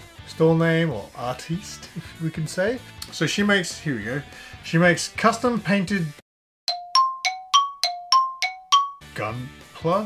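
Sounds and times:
bell-like chime alternating notes: 0:06.7 - 0:09.0.

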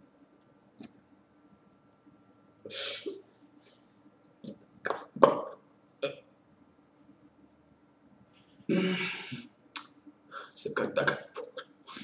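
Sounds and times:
man grunting: 0:08.7 - 0:09.4.

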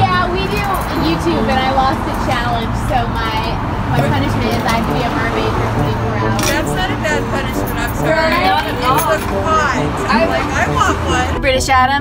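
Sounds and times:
people talking: 0:00.0 - 0:12.0
road traffic rumble: 0:00.0 - 0:12.0.

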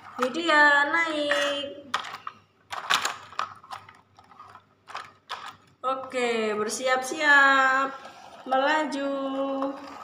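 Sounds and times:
plastic toys clicking and knocking: 0:01.1 - 0:06.2.

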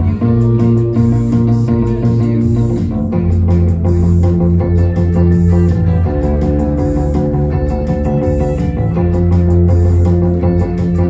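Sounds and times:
electric bass guitar: 0:00.0 - 0:11.0
rock band track: 0:00.0 - 0:11.0.

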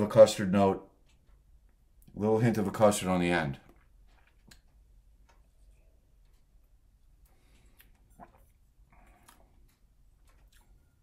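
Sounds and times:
mouth sipping sounds: 0:07.6 - 0:09.6.

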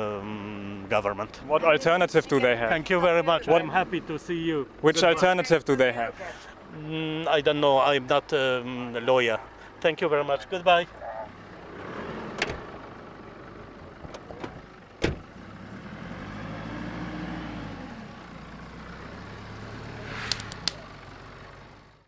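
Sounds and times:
van engine running: 0:00.0 - 0:22.0
van door slamming: 0:14.1 - 0:15.3.

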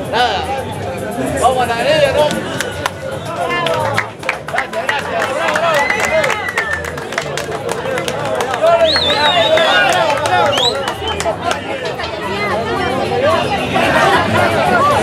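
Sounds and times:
crowd shouting and cheering: 0:02.0 - 0:15.0.

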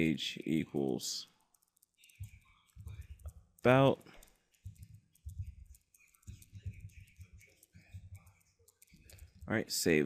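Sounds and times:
faint keyboard keystrokes: 0:00.8 - 0:09.5.

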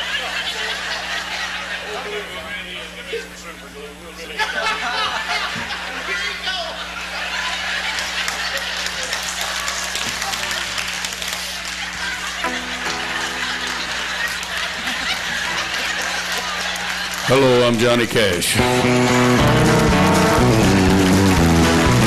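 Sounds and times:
audience laughing: 0:00.0 - 0:03.4, 0:04.1 - 0:22.0
audience clapping: 0:06.9 - 0:22.0
held musical note: 0:12.4 - 0:16.0.

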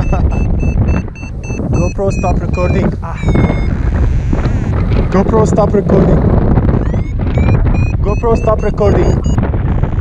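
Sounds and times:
high electronic beeps rising: 0:00.0 - 0:04.7, 0:06.8 - 0:09.4
wind rushing over microphone: 0:00.0 - 0:10.0.

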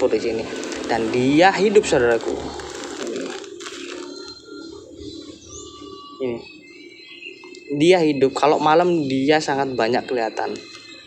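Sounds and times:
bird chirp: 0:00.0 - 0:11.0
plastic bag crinkling: 0:00.3 - 0:04.5.

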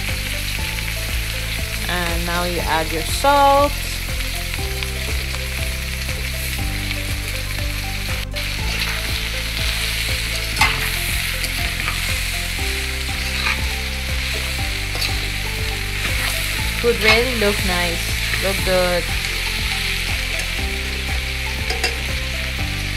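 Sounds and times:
food sizzling in a pot: 0:00.0 - 0:22.9
metal spatula scraping a pot: 0:13.2 - 0:13.7.

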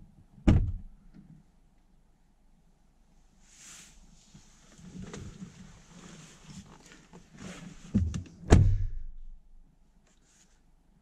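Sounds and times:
car door shutting with thunk: 0:00.4 - 0:00.9, 0:07.9 - 0:09.1.

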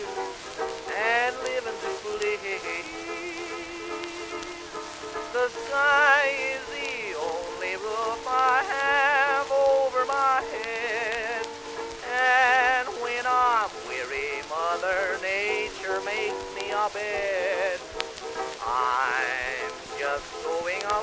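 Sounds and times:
old popular song recording: 0:00.0 - 0:21.0
record crackle and hiss: 0:00.0 - 0:21.0.

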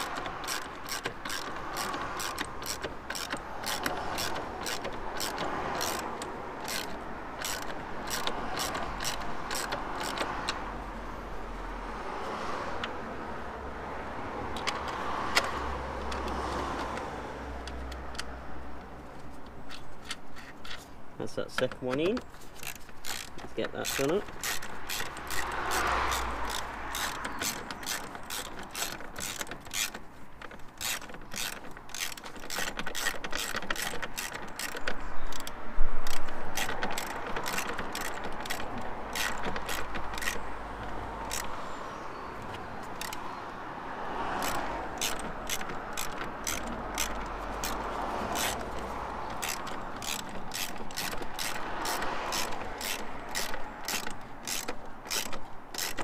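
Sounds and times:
socket ratchet clicking: 0:00.0 - 0:10.7, 0:14.5 - 0:43.4, 0:44.0 - 0:56.0.

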